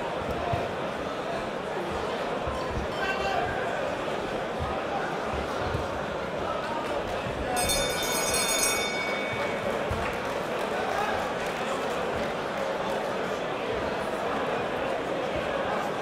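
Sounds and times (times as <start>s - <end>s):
crowd chatter in a hall: 0.0s - 16.0s
boxing ring bell ringing: 7.6s - 10.0s.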